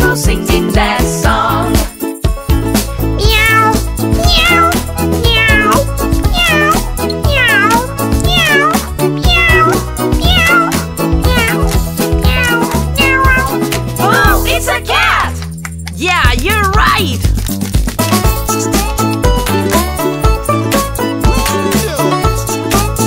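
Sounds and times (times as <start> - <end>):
bouncy children's song backing track: 0.0 - 23.0
cat meowing: 3.2 - 13.6.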